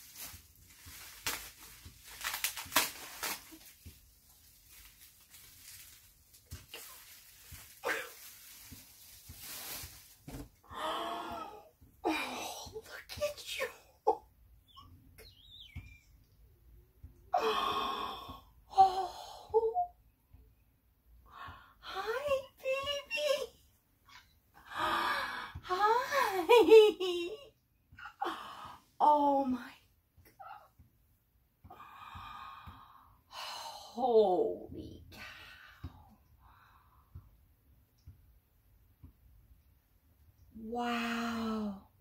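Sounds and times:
woman cooing and gasping: 10.7 - 12.6, 17.4 - 19.9
woman sighing: 10.7 - 12.7, 17.3 - 19.9.

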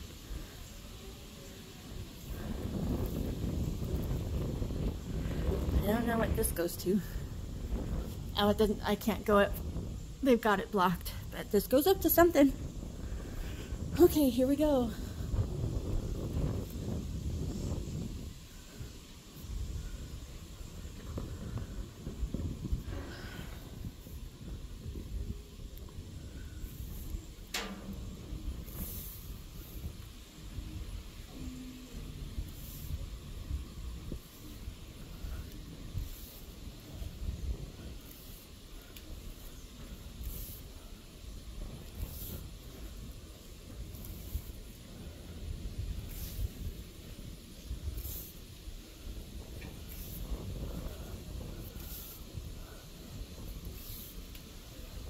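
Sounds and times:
faint hissing: 0.0 - 55.0
wind rumble on microphone: 0.0 - 55.0.

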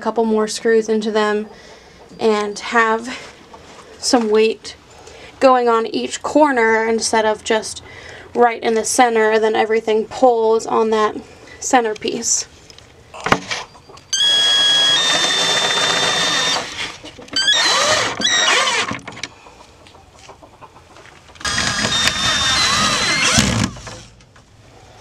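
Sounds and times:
power drill driving screws: 14.2 - 19.0, 21.4 - 24.1.

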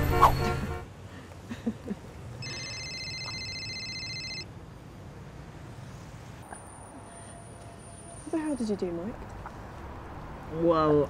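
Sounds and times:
street traffic rumble: 0.0 - 11.0
telephone ringtone trilling: 2.4 - 4.5.

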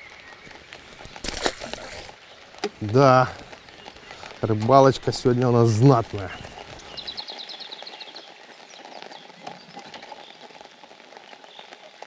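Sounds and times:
fish splashing into pond: 0.7 - 2.8.

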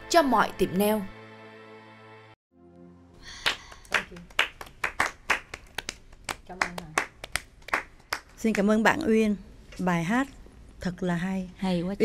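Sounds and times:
people clapping: 3.2 - 8.8.

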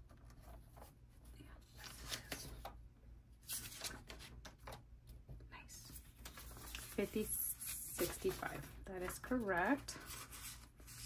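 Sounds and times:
paper banknotes rustling: 6.0 - 11.0.

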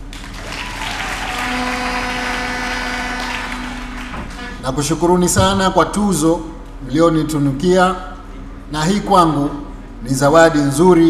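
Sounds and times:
audience applauding: 0.0 - 4.6.

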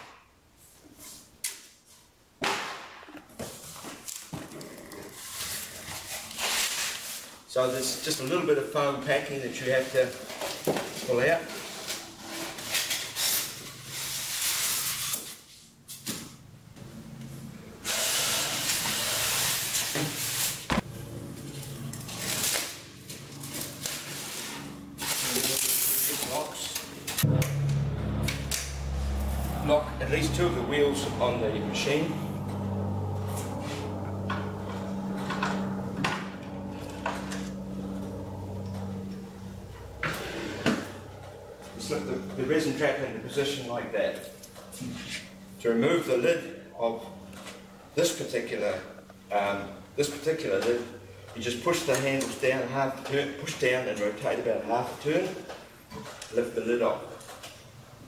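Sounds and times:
low steady rumble: 20.8 - 25.0, 26.5 - 52.1.

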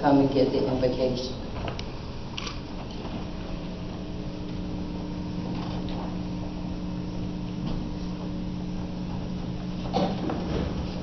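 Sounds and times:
hall room noise: 0.0 - 11.0
sound system electrical hum: 0.0 - 11.0.

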